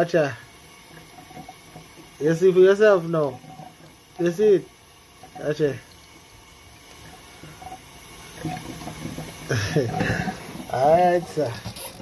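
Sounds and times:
tap water splashing: 0.6s - 4.4s, 5.1s - 11.8s.

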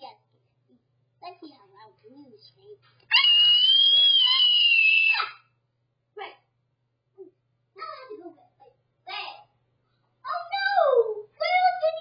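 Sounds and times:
child screaming: 3.1s - 5.5s.

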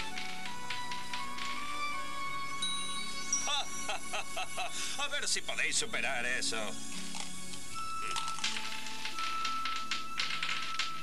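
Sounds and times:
background music with held note: 0.0s - 11.0s
dice rattling and clattering: 8.2s - 11.0s.

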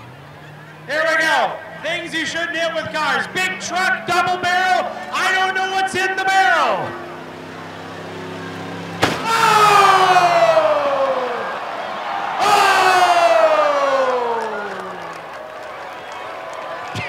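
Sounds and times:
pickup truck engine revving: 0.0s - 16.3s
truck hitting barrels: 8.6s - 11.2s.

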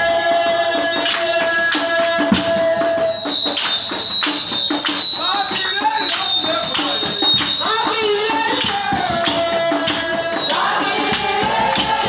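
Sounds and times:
drums and hand percussion: 0.0s - 12.0s.

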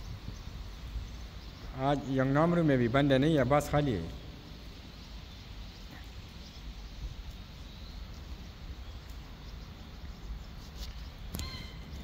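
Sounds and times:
faint ticks: 8.9s - 12.0s.

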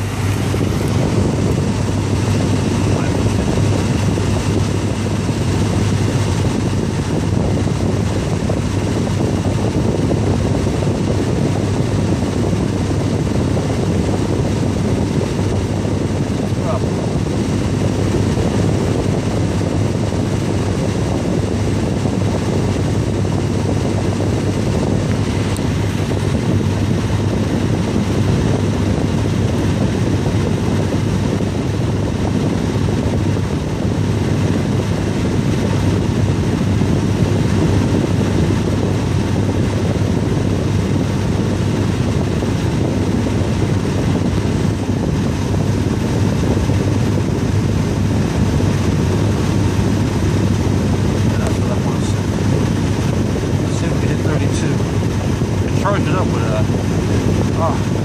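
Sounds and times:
air vent blowing: 0.0s - 58.0s
low hum: 0.0s - 58.0s.

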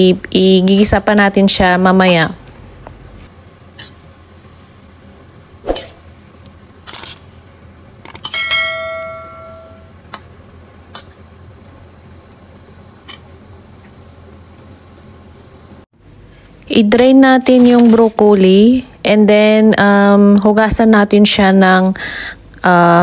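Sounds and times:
notification bell ding: 8.3s - 9.9s.

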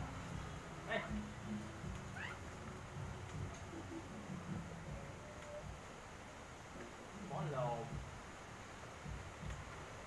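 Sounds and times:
high-pitched animal call: 2.2s - 2.4s.

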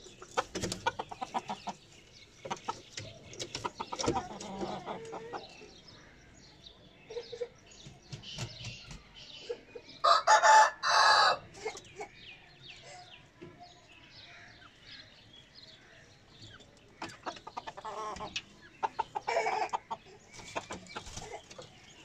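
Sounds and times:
hens clucking: 0.0s - 5.9s, 16.5s - 22.0s
rooster crowing: 10.0s - 11.4s.

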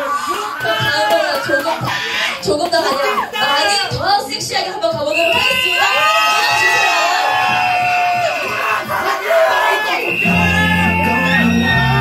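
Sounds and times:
crowd whooping and shouting: 0.0s - 3.9s, 5.1s - 12.0s.

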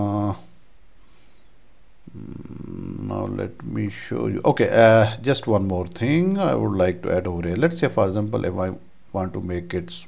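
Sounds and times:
faint low hum: 0.0s - 10.0s
man humming mmm: 2.0s - 3.4s.

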